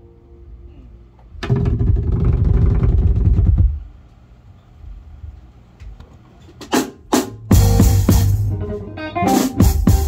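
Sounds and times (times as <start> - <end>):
bass drums and guitar trio: 1.4 - 3.9, 6.6 - 10.0.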